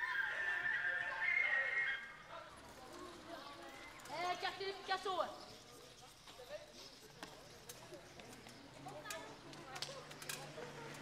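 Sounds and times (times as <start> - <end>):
faint voices outdoors: 0.0 - 11.0.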